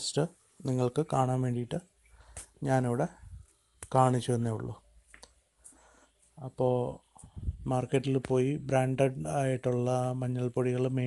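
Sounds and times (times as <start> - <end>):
man speaking: 0.0 - 4.8, 6.4 - 11.0
faint sharp clicks: 5.1 - 5.8.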